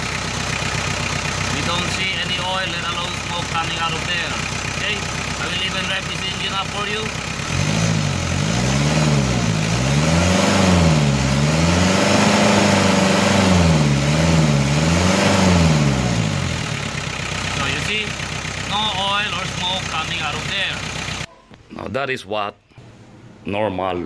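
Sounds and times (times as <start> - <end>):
diesel engine revving: 0.0 - 21.3.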